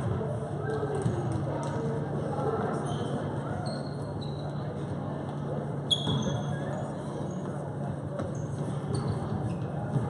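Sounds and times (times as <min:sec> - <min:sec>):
sneakers squeaking on floor: 0:02.8 - 0:04.8, 0:05.8 - 0:10.0
basketball bouncing on gym floor: 0:08.1 - 0:10.0.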